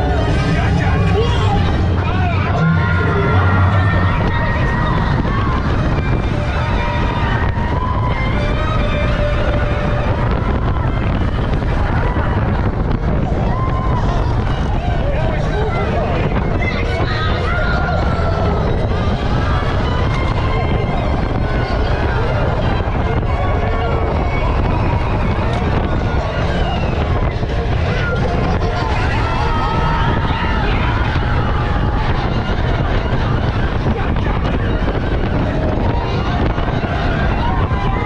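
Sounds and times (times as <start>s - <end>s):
roller coaster wheels rumbling on rail: 0.0s - 38.0s
wind on microphone: 0.0s - 38.0s.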